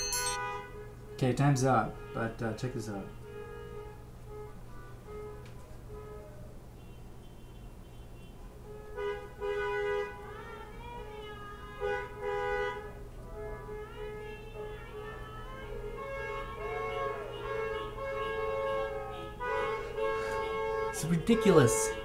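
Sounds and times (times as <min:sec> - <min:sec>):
car horns honking: 0:00.0 - 0:10.4, 0:11.3 - 0:22.0.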